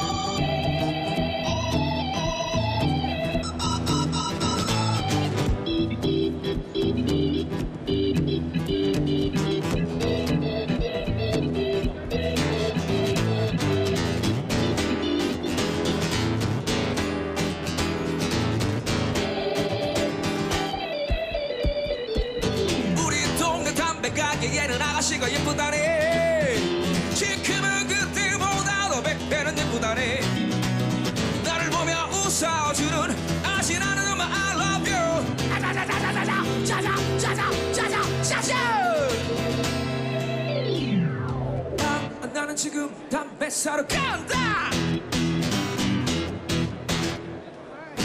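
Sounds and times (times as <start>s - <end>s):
live band music: 0.0s - 33.5s, 34.7s - 42.3s
organ-toned keyboard solo: 0.0s - 42.4s
guitar: 0.0s - 48.0s
drum beats: 5.1s - 14.2s, 19.2s - 23.3s
rock band drums and bass: 16.4s - 23.0s.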